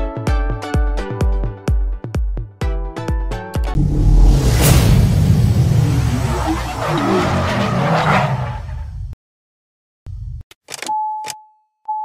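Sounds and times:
deep engine rumble: 0:03.8 - 0:07.8
tyres skidding: 0:05.2 - 0:09.1.

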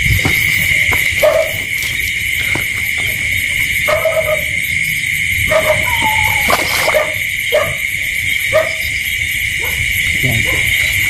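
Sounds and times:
insects chirping: 0:00.0 - 0:11.0
low animal call: 0:05.5 - 0:07.7.

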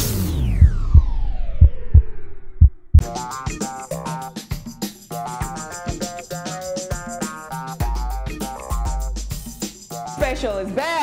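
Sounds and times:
synthesized tone gliding downward: 0:00.0 - 0:02.9
low heartbeat-like thumps: 0:00.0 - 0:03.3.

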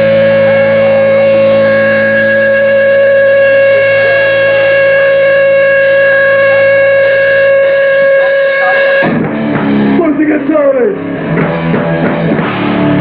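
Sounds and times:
electric guitar feedback: 0:00.0 - 0:13.0.

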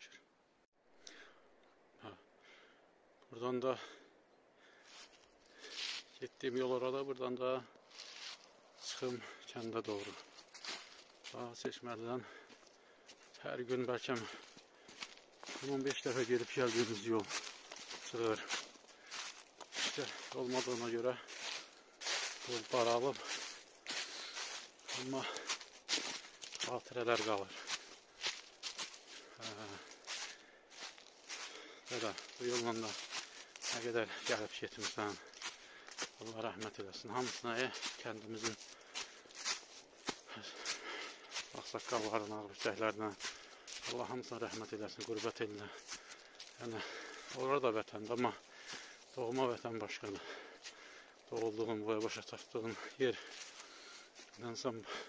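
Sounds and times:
footsteps rustling dry leaves: 0:04.9 - 0:06.2, 0:07.8 - 0:11.6, 0:12.2 - 0:55.0.

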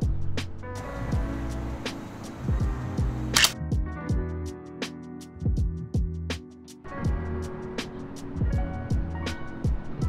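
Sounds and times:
background music with drum beat: 0:00.0 - 0:10.0
camera shutter click: 0:03.3 - 0:03.6.

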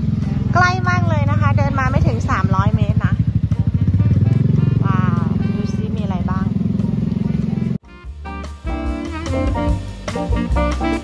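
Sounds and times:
motorcycle riding past slowly: 0:00.0 - 0:07.8.

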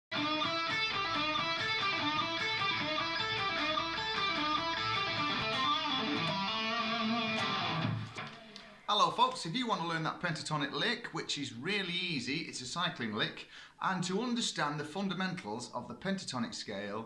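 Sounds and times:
electric guitar lick: 0:00.1 - 0:08.9.

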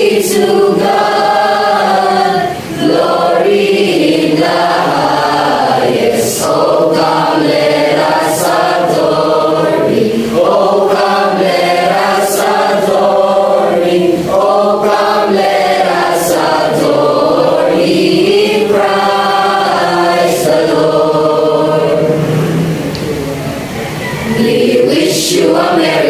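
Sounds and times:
mixed choir singing: 0:00.0 - 0:26.0.

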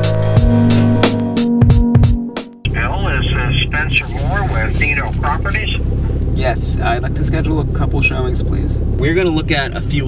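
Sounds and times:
person talking: 0:02.7 - 0:05.8
car engine rumble from inside: 0:02.7 - 0:10.0.

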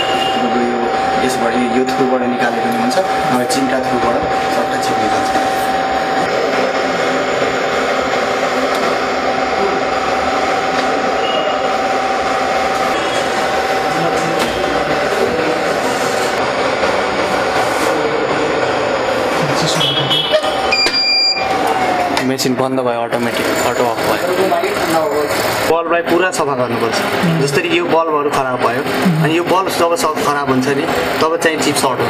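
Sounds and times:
blower air rushing: 0:00.0 - 0:19.8
steady whine: 0:00.0 - 0:32.0.

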